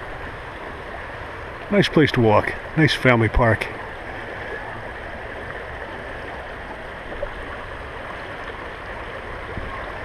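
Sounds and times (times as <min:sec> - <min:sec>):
stream rippling over rocks: 0:00.0 - 0:10.0.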